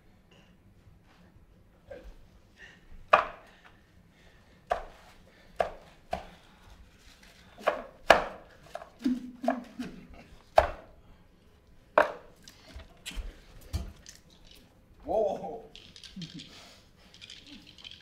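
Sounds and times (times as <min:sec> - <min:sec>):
dice clattering on table: 0:15.7 - 0:18.0.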